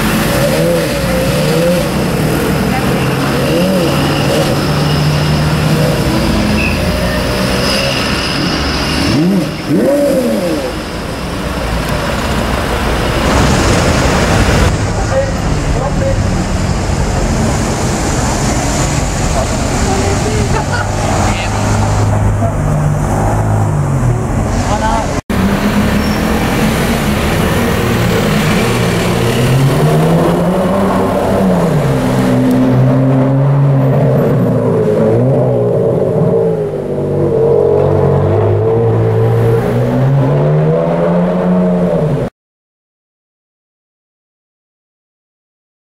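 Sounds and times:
sports car engine revving: 8.8s - 11.0s.

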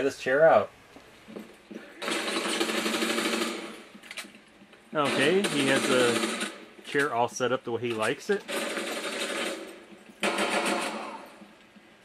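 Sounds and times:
video game automatic gunfire: 1.9s - 4.0s, 5.0s - 6.8s, 8.4s - 11.6s.

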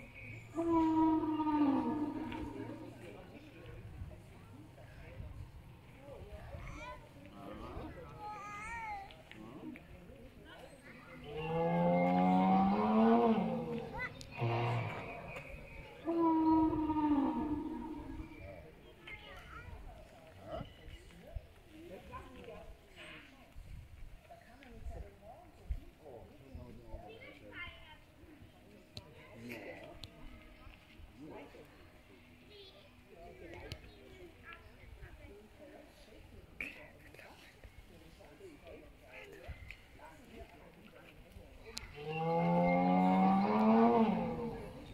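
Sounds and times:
distant chatter of people: 0.0s - 44.9s
dinosaur call over loudspeaker: 0.6s - 2.8s, 16.0s - 18.4s.

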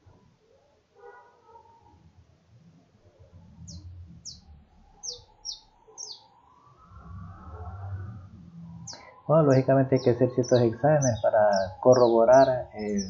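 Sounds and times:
low rumble: 3.2s - 5.8s, 6.7s - 13.0s
small bird chirping: 3.5s - 6.4s, 8.6s - 13.0s.

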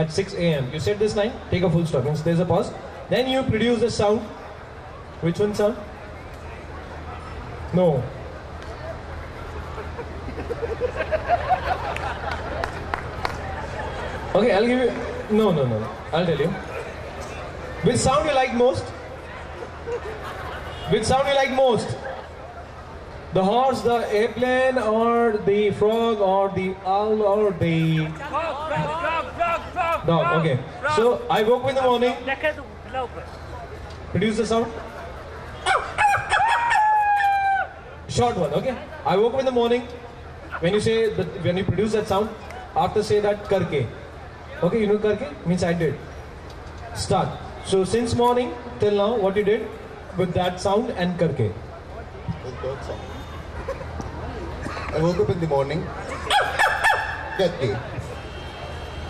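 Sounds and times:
man chuckling: 9.7s - 11.6s
man imitating rooster crowing: 35.6s - 37.7s.

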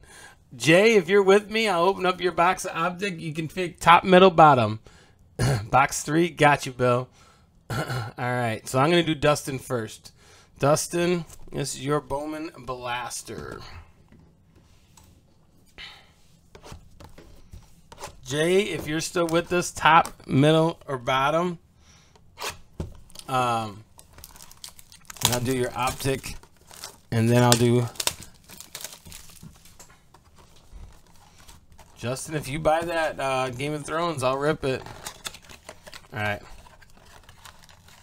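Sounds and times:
plastic shrink wrap crinkling: 22.9s - 38.0s
cardboard box rustling: 24.0s - 33.6s, 34.8s - 38.0s.

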